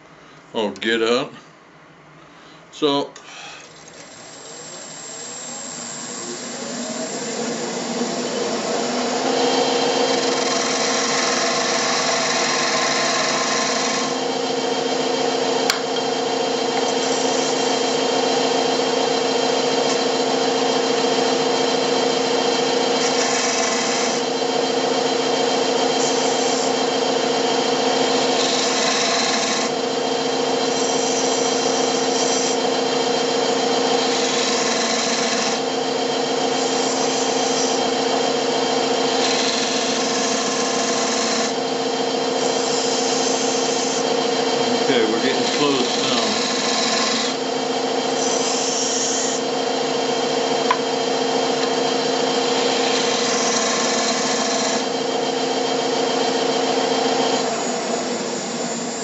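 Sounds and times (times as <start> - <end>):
wood lathe humming: 3.3 - 59.0
hand tool scraping spinning wood: 7.8 - 14.2, 22.9 - 24.3, 28.1 - 29.8, 33.5 - 35.7, 39.1 - 41.6, 42.4 - 47.4, 50.4 - 55.0.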